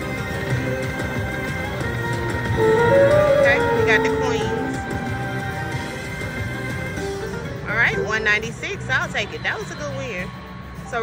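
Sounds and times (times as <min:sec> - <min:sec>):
slot machine bonus music: 0:02.6 - 0:05.1.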